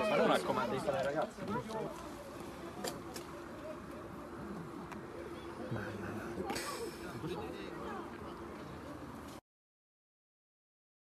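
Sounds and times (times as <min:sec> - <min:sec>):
faint voices talking: 0:00.0 - 0:09.4.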